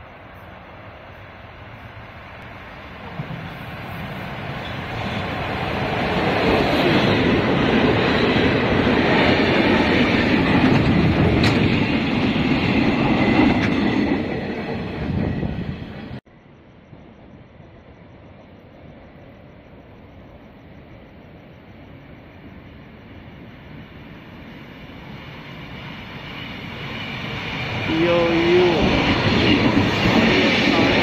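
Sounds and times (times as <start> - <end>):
freight train rumbling past: 0.0 - 16.2, 18.0 - 31.0
wheels clattering over rails: 7.2 - 14.4.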